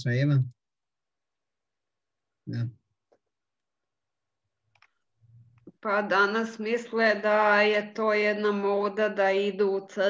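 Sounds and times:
faint low hum: 0:00.0 - 0:00.5
person speaking: 0:02.5 - 0:02.7.

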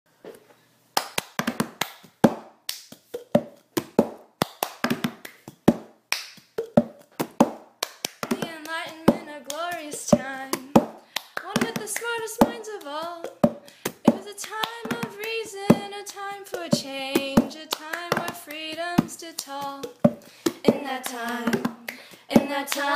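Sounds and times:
hand claps: 0:01.0 - 0:22.9
person singing: 0:08.3 - 0:22.9.

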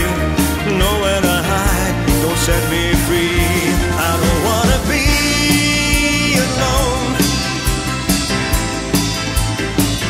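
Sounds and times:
drum kit beat: 0:00.0 - 0:10.0.

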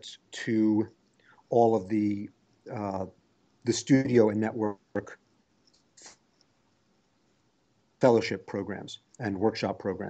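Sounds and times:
faint breath: 0:01.2 - 0:01.5.

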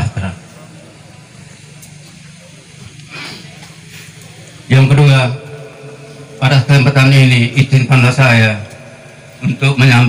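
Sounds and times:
faint background voices: 0:00.0 - 0:07.0.

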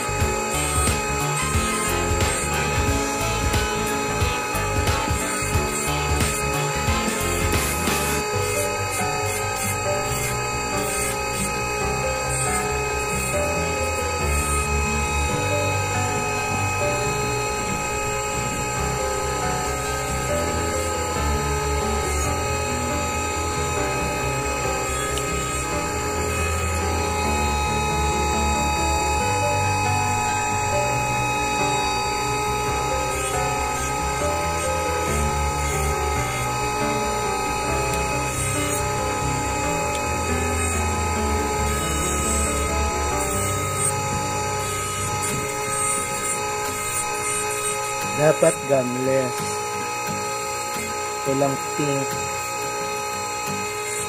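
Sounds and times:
background music with steady beat: 0:00.0 - 0:54.0
bench lathe whining: 0:00.0 - 0:54.0.

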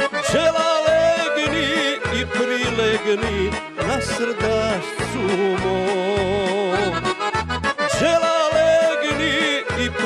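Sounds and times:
folk band with accordion: 0:00.0 - 0:10.0
man singing: 0:00.0 - 0:10.0.

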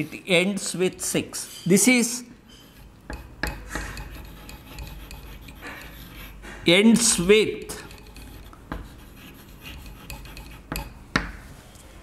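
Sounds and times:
chalk scraping on blackboard: 0:02.5 - 0:11.0.

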